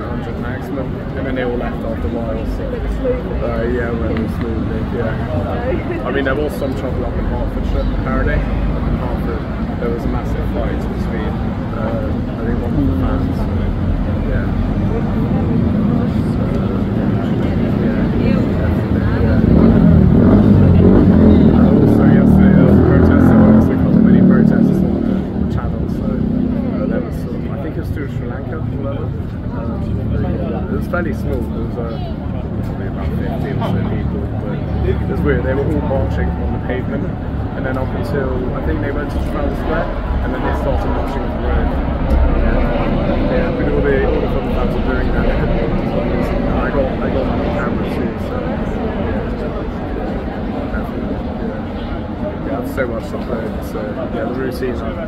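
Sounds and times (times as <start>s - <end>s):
people talking: 0.0s - 55.0s
vehicle engine passing: 0.0s - 55.0s
faint tone sinking in pitch: 12.4s - 14.7s.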